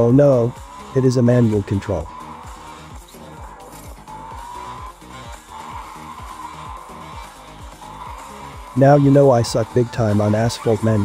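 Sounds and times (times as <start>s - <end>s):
electronic music with fast beat: 0.0s - 11.0s
game car engine sounds: 0.0s - 11.0s.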